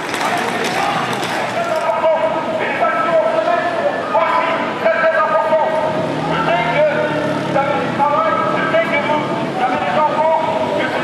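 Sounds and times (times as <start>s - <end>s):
man speaking through megaphone: 0.0s - 11.0s.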